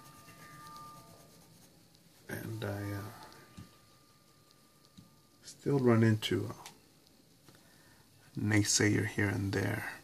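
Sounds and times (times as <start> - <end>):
pencil scratching on paper: 0.0 - 2.5
thin steady tone: 0.0 - 10.0.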